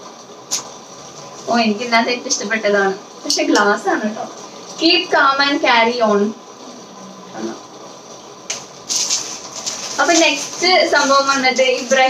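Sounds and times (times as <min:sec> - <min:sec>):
plastic packaging crinkling: 0:08.5 - 0:12.0.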